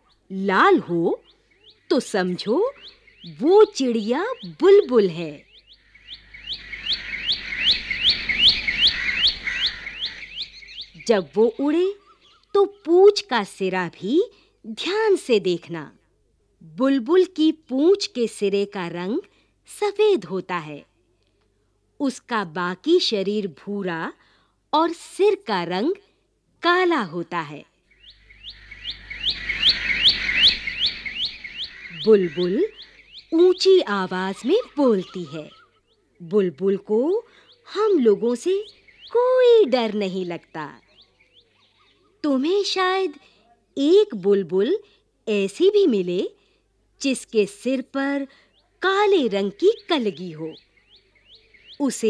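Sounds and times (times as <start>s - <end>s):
bird chirping: 0.0s - 13.2s, 27.8s - 42.5s, 48.3s - 52.0s.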